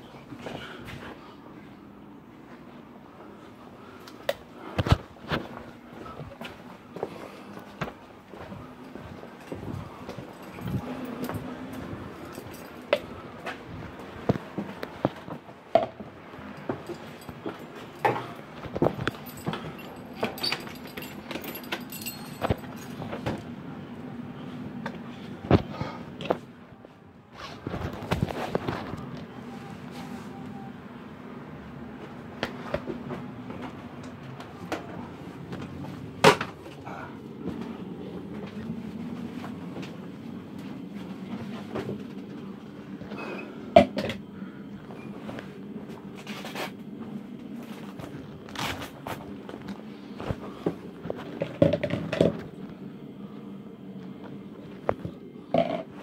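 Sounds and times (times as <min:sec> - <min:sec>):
low steady hum: 0:00.0 - 0:56.0.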